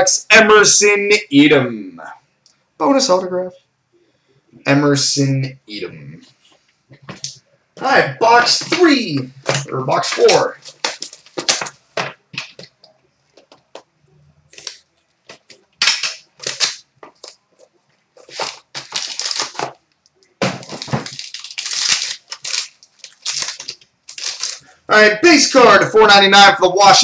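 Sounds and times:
plastic wrap tearing and crinkling: 9.9 - 11.9, 14.5 - 24.8.

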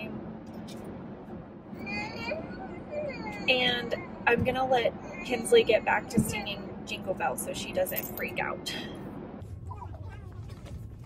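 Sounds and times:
car cabin road noise: 0.0 - 11.0
toddler singing: 1.8 - 4.0.

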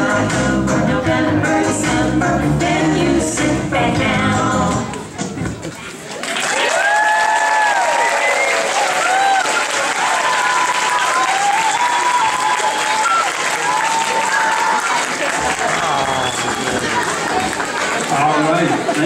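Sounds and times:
voices calling out and cheering: 5.0 - 19.0
audience clapping: 6.0 - 19.0.

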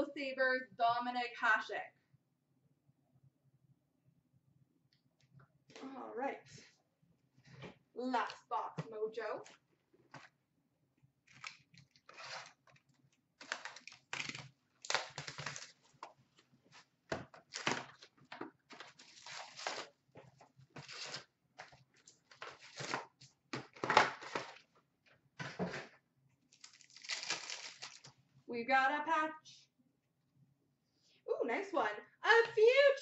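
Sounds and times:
card pack wrappers tearing: 11.3 - 12.8, 13.4 - 16.0, 17.4 - 18.1, 18.7 - 19.9, 20.8 - 21.3, 22.3 - 24.6, 26.5 - 28.1
wrapper crinkling: 11.3 - 16.0, 18.7 - 19.9, 26.5 - 28.1.

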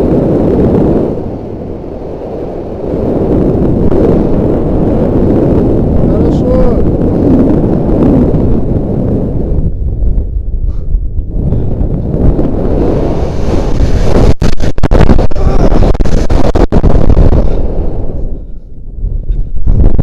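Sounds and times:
wind buffeting a microphone: 0.0 - 20.0.

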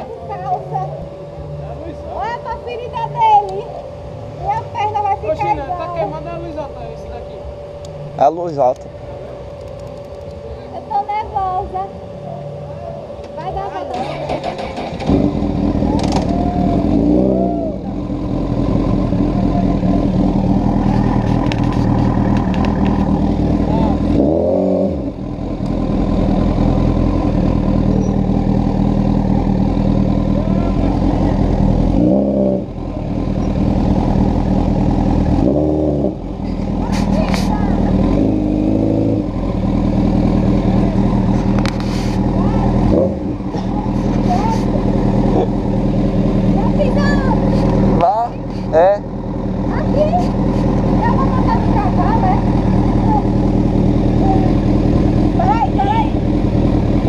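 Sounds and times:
motorcycle engine running: 0.0 - 57.0.

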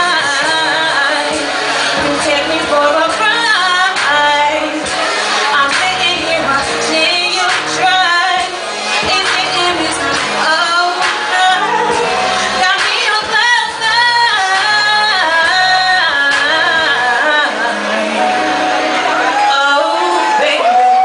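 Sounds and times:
instrumental backing with bass line: 0.0 - 21.0
woman singing into microphone: 0.0 - 21.0.

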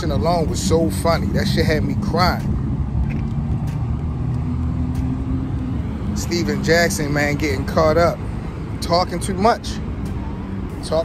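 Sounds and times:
low motor rumble: 0.0 - 11.0.

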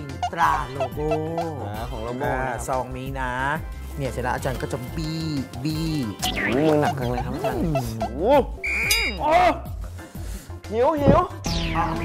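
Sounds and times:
background music: 0.0 - 12.0
wordless voice sounds: 3.9 - 9.6
short high electronic beep: 8.6 - 9.2.

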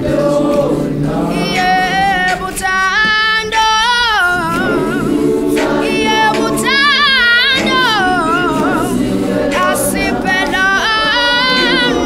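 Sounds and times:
choir singing a cappella: 0.0 - 12.0
high solo voice singing runs: 1.3 - 12.0.

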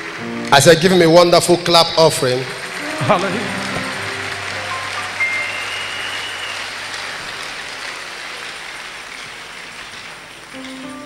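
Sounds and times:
crowd clapping: 0.0 - 11.0.

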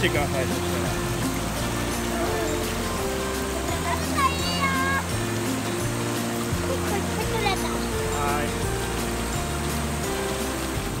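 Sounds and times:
background music: 0.0 - 11.0
shallow river rushing: 0.0 - 11.0.

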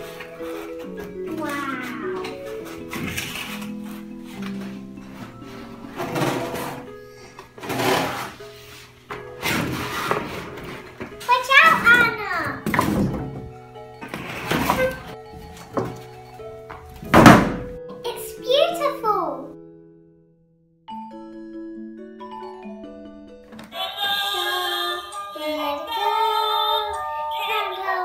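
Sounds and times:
background music: 0.0 - 28.0
child's voice: 1.2 - 2.4, 11.2 - 12.7, 17.9 - 19.6, 24.5 - 28.0
cardboard box scraping and rustling: 7.6 - 8.6, 9.3 - 10.9.

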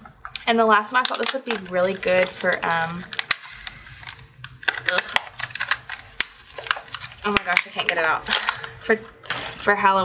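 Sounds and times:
packaging crackling by hand: 0.2 - 9.8.

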